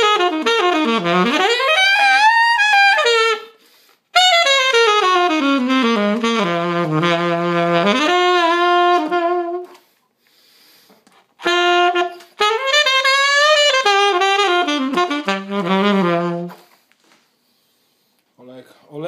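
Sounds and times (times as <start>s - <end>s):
alto saxophone playing solo: 0.0s - 10.0s, 11.3s - 16.8s.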